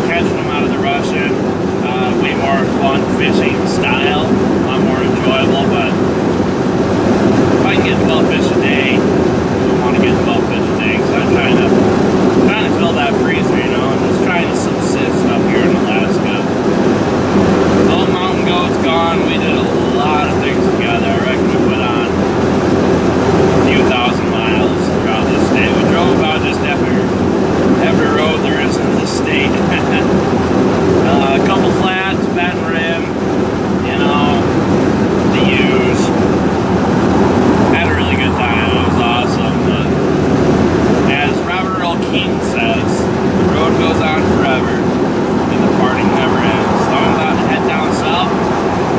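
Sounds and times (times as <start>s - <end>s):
man talking: 0.0s - 6.0s, 7.6s - 11.8s, 12.4s - 16.6s, 17.8s - 22.2s, 23.5s - 30.2s, 31.0s - 33.2s, 33.8s - 34.6s, 35.2s - 36.2s, 37.7s - 40.0s, 41.0s - 44.9s, 45.5s - 48.4s
engine and road drone: 0.0s - 48.9s.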